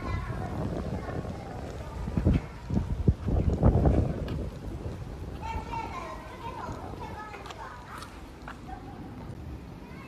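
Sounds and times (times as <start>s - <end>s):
background voices talking: 0.0s - 10.0s
wind buffeting microphone: 0.0s - 10.0s.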